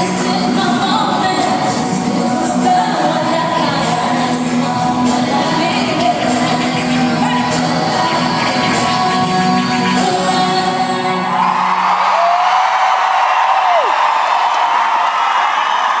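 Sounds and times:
concert music through pa: 0.0s - 16.0s
crowd cheering and screaming: 4.8s - 16.0s.

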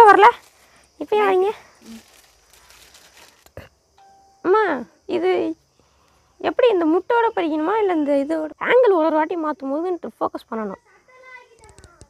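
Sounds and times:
faint steady tone: 0.4s - 11.3s.

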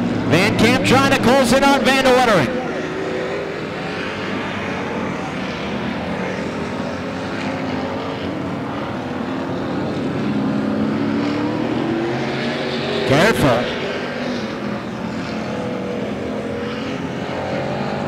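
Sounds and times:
race car engines revving: 0.0s - 18.0s.

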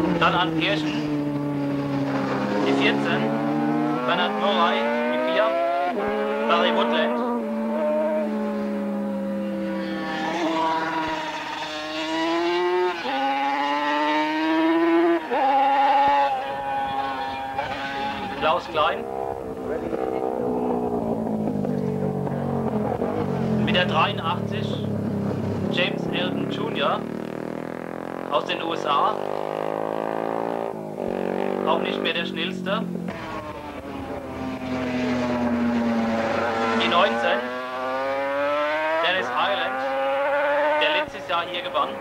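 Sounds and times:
racing motorcycles passing: 0.0s - 42.0s.

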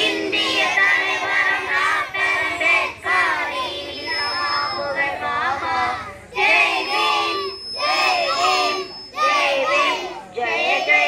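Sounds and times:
children singing together: 0.0s - 11.0s.

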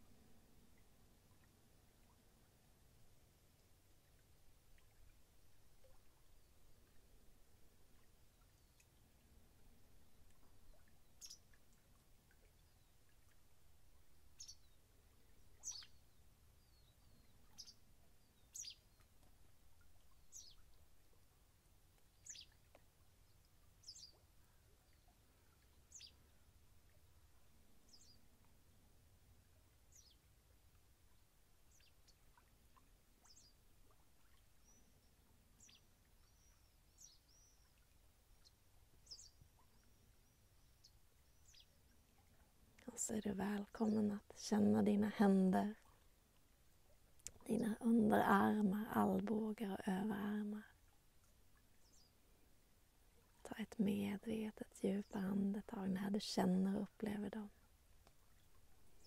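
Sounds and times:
faint bird chirps: 9.9s - 21.2s, 22.0s - 28.4s, 29.8s - 30.4s, 31.0s - 46.0s, 47.3s - 52.2s
bird twittering: 15.6s - 16.0s.

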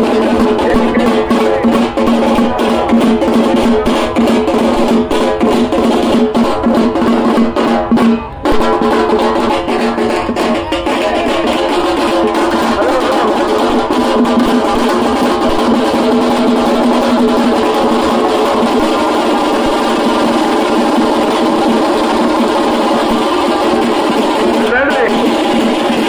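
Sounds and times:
large crowd voices: 0.0s - 26.0s
loud music: 0.0s - 26.0s.

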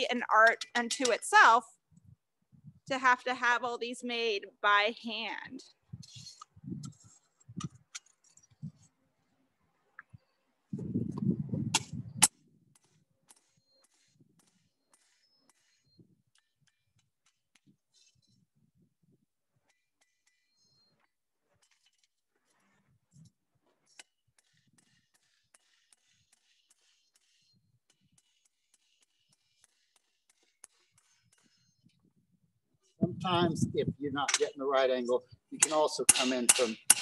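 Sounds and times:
hammer striking hot iron: 35.6s - 37.0s.

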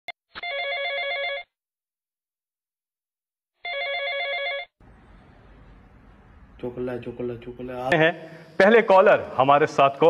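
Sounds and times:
electronic telephone ringing: 0.4s - 1.5s, 3.6s - 4.8s.

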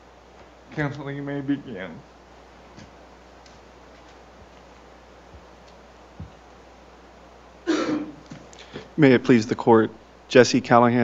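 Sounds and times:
faint taps and clicks: 5.3s - 6.4s.

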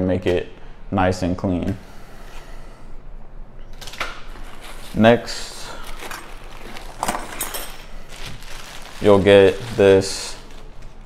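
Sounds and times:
plastic bag rustling: 3.8s - 11.0s
metal hand tools clinking: 6.9s - 7.9s.

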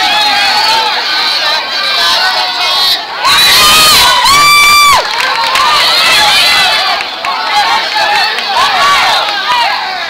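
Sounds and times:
spectators cheering and shouting: 0.0s - 10.0s.

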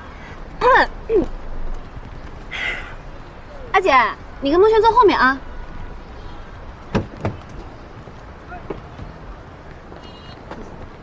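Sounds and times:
sharp knocks: 6.9s - 7.5s.

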